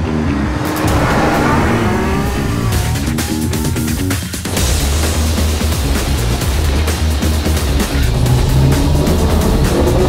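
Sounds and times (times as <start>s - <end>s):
background music: 0.0s - 10.0s
car engine accelerating: 0.0s - 10.0s.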